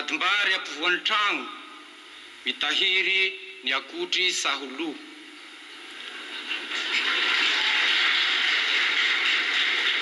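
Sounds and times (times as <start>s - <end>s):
audience applauding: 6.3s - 10.0s.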